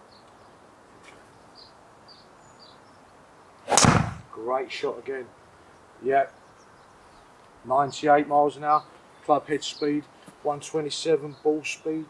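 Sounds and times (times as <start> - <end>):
golf club striking ball: 3.7 - 4.3.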